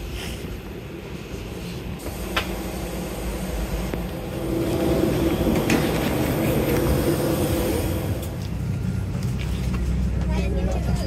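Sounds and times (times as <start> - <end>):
cabin ventilation drone: 0.0 - 10.2
faint passengers' voices: 5.4 - 11.0.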